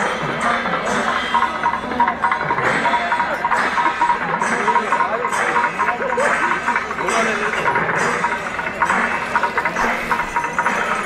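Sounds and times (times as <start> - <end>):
festival crowd din: 0.0 - 11.0
scattered clattering: 0.0 - 11.0.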